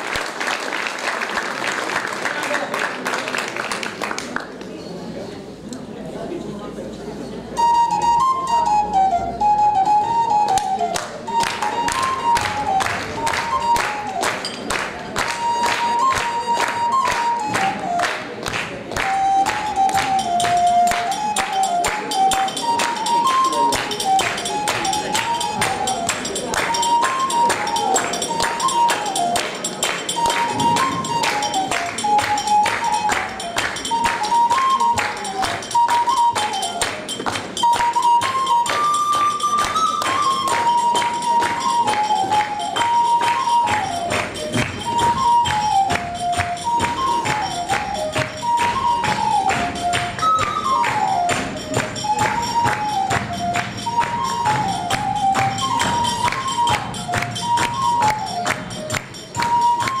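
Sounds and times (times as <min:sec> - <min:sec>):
shrill wind pipe folk tune: 0:07.5 - 1:00.0
fast clicking percussion: 0:09.5 - 1:00.0.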